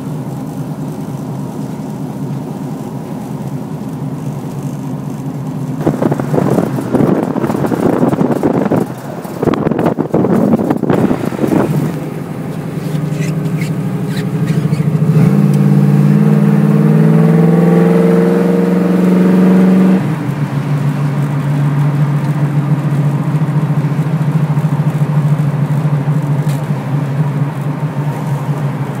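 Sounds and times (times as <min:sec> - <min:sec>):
car engine accelerating: 0:00.0 - 0:29.0.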